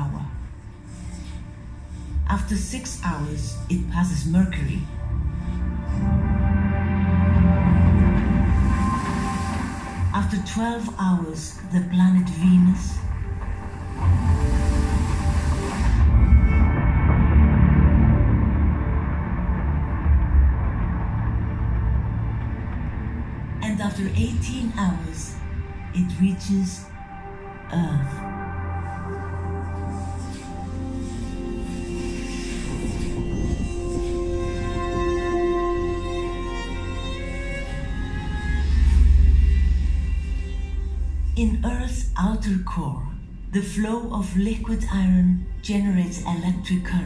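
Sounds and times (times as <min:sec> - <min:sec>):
deep low rumble: 0:00.0 - 0:47.0
soundtrack music: 0:00.0 - 0:47.0.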